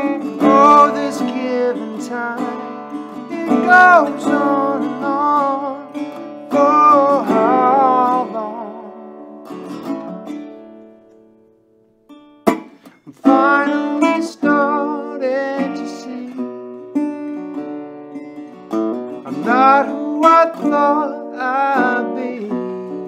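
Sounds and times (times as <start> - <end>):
slide resonator guitar: 0.0 - 23.0.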